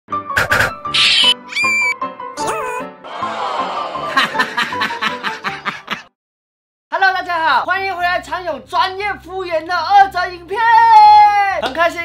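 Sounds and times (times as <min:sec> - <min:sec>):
high squeak: 0:00.4 - 0:02.0
short pitched whistle: 0:00.4 - 0:02.0.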